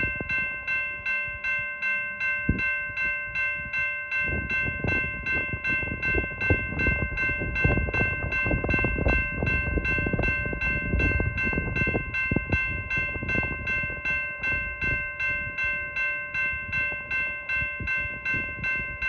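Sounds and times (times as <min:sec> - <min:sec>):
freight train cars rumbling: 0:00.0 - 0:19.0
railroad crossing bell ringing: 0:00.0 - 0:19.0.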